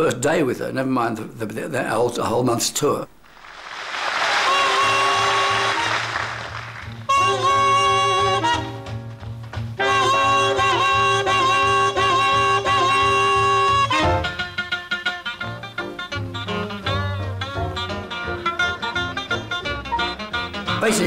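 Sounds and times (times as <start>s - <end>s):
swing jazz band music: 4.4s - 21.0s.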